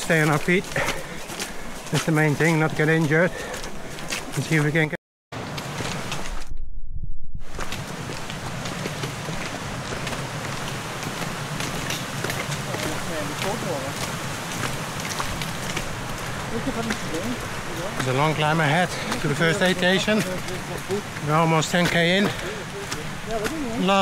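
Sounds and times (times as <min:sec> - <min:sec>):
running footfalls: 0:00.0 - 0:06.5, 0:07.4 - 0:24.0.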